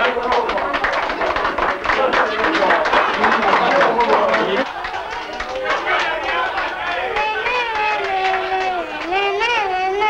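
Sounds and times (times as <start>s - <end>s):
people's voices: 0.0s - 10.0s.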